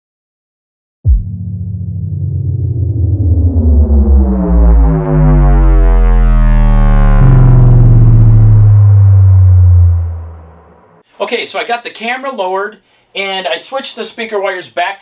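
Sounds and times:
deep synth bass drone: 0:01.1 - 0:11.0
loud held low tone: 0:01.1 - 0:11.0
synth tones sweeping upward: 0:01.6 - 0:11.0.

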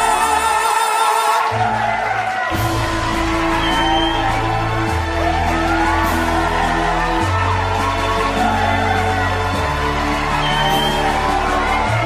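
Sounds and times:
audience whooping and cheering: 0:00.0 - 0:12.0.

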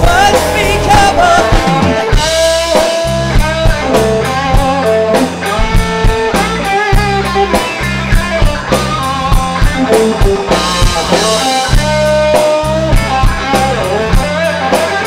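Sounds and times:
bass guitar: 0:00.0 - 0:15.0
drum kit beat: 0:00.0 - 0:15.0
electric guitar lead: 0:00.0 - 0:15.0.

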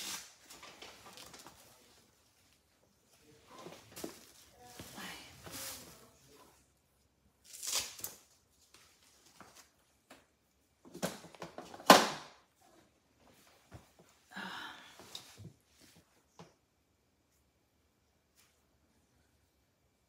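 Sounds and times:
rustling and scraping handling: 0:00.0 - 0:06.7.

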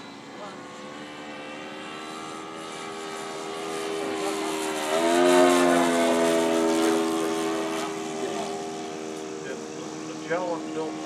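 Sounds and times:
model plane engine flying past: 0:00.0 - 0:11.0.

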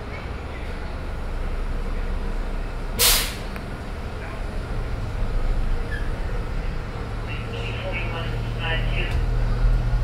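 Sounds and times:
bus low steady hum: 0:00.0 - 0:10.0
compressed air hiss: 0:03.0 - 0:03.4.

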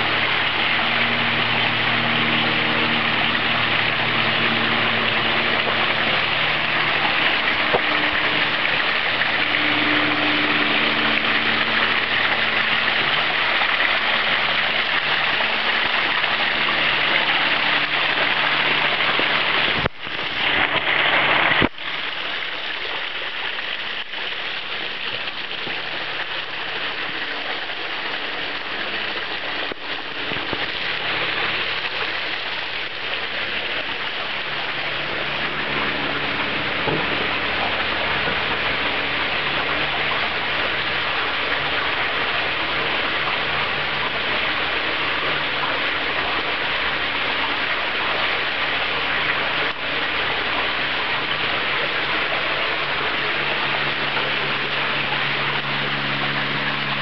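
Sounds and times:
faint low drone: 0:00.0 - 0:57.0
water pouring over rock ledges: 0:00.0 - 0:57.0.

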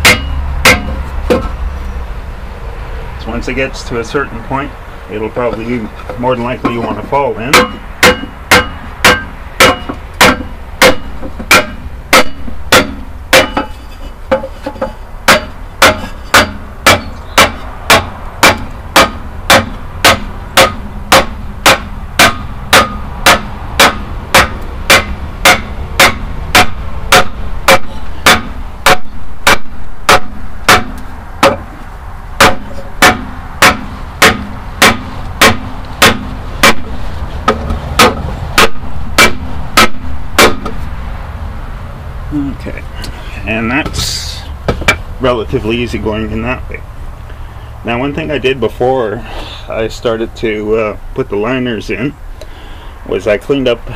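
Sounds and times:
sledgehammer striking wooden board: 0:00.0 - 0:01.6, 0:07.5 - 0:31.8, 0:32.4 - 0:40.9.

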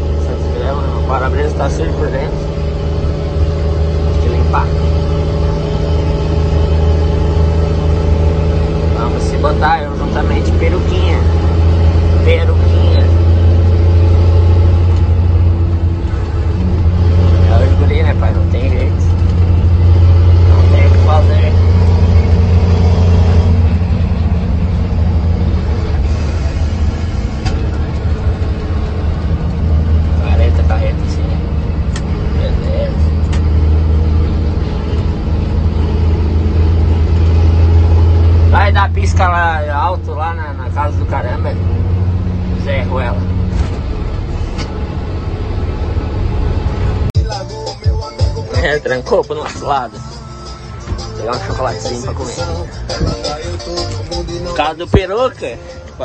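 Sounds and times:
truck engine drone: 0:00.0 - 0:56.0.

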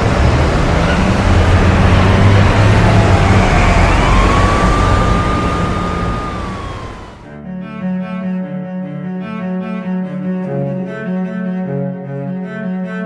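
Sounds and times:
engine whine: 0:00.0 - 0:07.3
jet engines rumbling: 0:00.0 - 0:07.3.

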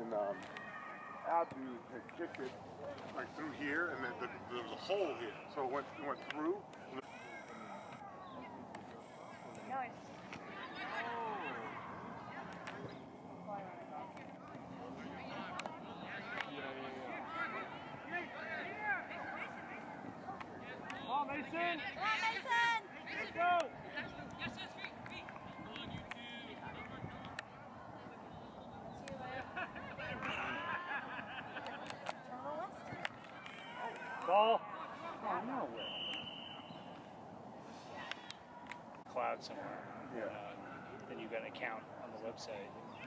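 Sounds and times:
outdoor background hiss: 0:00.0 - 0:25.3
people shouting and calling: 0:14.9 - 0:28.2
referee's whistle: 0:35.8 - 0:36.9.

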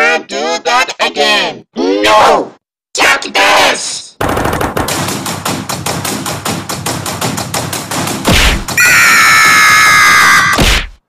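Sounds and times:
rapid rattling cartoon hits: 0:04.2 - 0:09.6.

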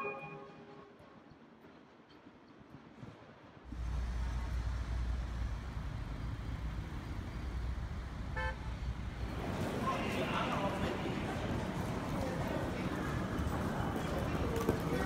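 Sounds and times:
car horn toot: 0:00.0 - 0:00.7, 0:08.3 - 0:08.8.

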